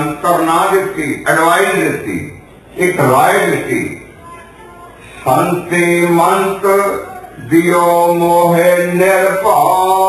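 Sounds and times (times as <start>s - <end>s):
man chanting: 0.0s - 4.0s, 5.2s - 10.0s.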